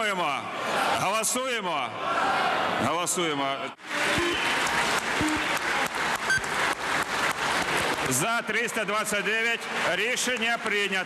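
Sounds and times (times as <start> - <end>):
crowd applauding: 3.8 - 11.0.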